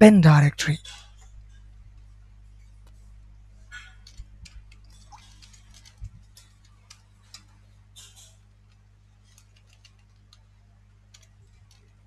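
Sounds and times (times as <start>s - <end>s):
keyboard keys clicking: 8.7s - 10.5s, 11.1s - 12.0s.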